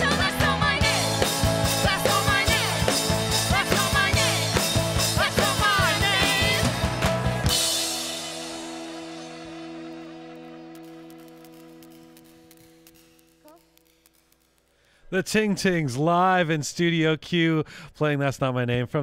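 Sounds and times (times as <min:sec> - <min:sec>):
pop band playing with singing: 0:00.0 - 0:08.4.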